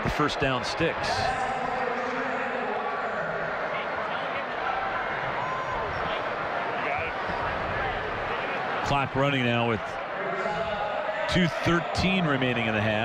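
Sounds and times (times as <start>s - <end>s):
murmur of crowd voices: 0.0s - 13.0s.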